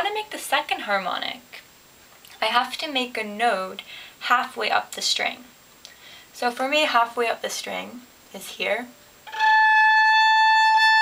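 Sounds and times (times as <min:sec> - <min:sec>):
violin harmonic note: 0:09.2 - 0:11.0.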